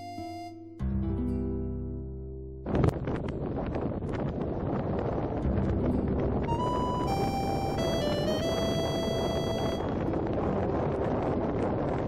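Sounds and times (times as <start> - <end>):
wind and road noise: 2.5 - 12.0
short electronic tune: 6.5 - 9.9.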